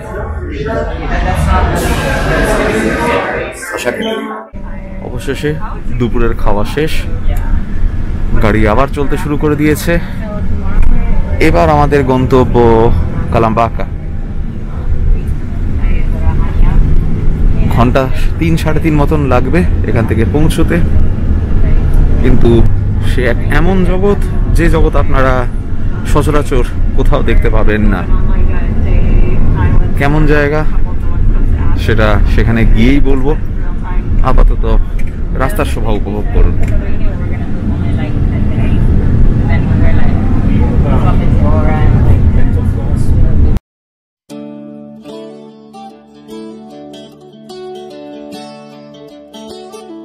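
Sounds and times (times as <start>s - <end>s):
faint voices: 0.0s - 6.4s
bus engine and road rumble: 0.0s - 43.6s.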